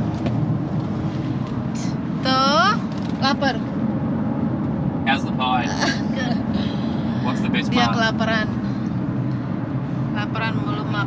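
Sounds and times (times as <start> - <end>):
car road and engine rumble: 0.0 - 11.0
voices speaking: 5.1 - 8.6.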